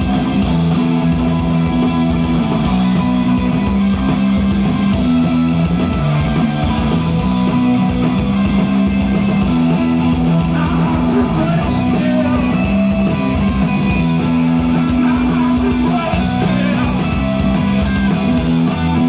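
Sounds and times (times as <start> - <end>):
bass guitar low notes: 0.0 - 19.0
electric guitar: 0.0 - 19.0
live rock band: 0.0 - 19.0.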